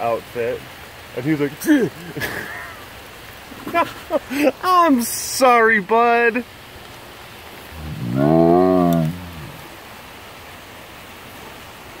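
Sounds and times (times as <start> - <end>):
tiger moaning yowl: 7.7 - 9.7.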